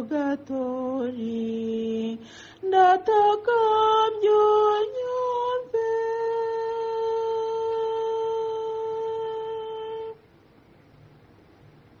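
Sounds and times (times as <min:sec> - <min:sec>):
woman singing a long note: 0:00.0 - 0:10.2
faint hiss: 0:00.0 - 0:12.0.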